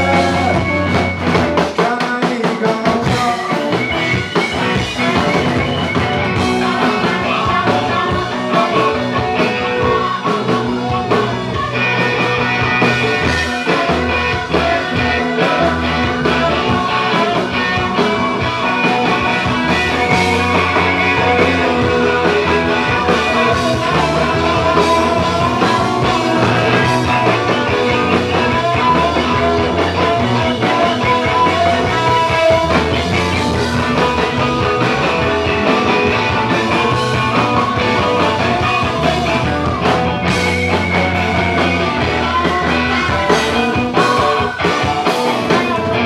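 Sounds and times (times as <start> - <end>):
drum beat: 0.0 - 46.0
electric guitars: 0.0 - 46.0.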